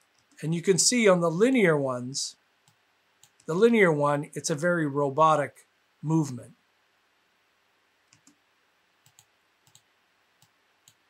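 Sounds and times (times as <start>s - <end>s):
computer mouse clicks: 2.6s - 3.5s, 8.0s - 8.4s, 9.0s - 11.0s.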